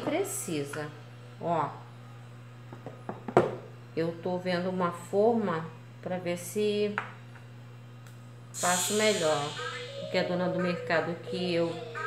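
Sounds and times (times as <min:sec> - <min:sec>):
low steady hum: 0:00.0 - 0:12.0
soap bar knocking on tray: 0:02.7 - 0:03.6.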